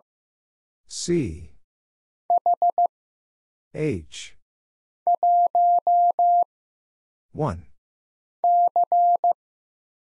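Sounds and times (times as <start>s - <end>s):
morse code beeps: 2.3s - 2.9s, 5.1s - 6.5s, 8.4s - 9.4s.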